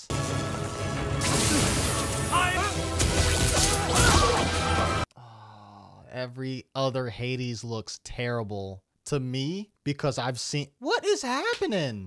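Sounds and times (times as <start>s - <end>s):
magic blast sound effect: 0.1s - 5.0s
film music: 0.1s - 5.1s.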